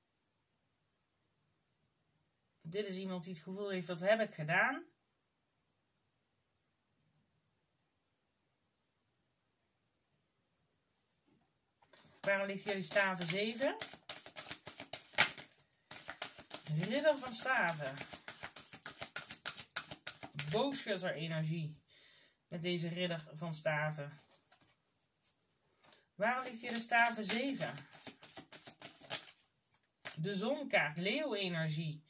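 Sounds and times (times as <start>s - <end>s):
cards ticking and rustling: 11.8s - 20.7s, 25.8s - 30.2s
sharp card snap: 12.6s - 20.6s.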